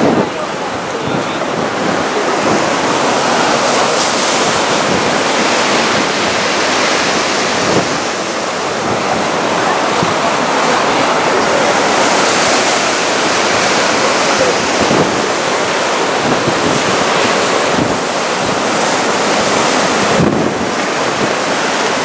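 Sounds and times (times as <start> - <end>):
rough sea surf: 0.0 - 22.0
wind buffeting microphone: 0.0 - 22.0.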